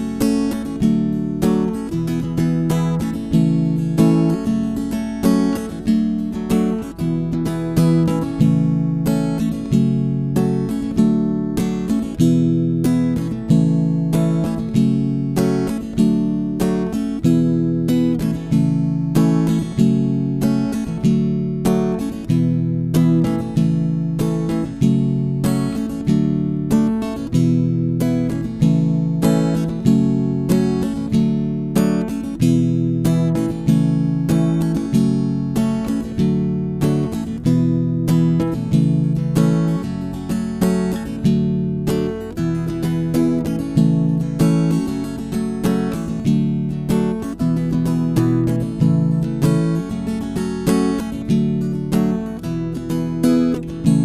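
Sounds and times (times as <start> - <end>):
acoustic guitar strummed: 0.0 - 54.0.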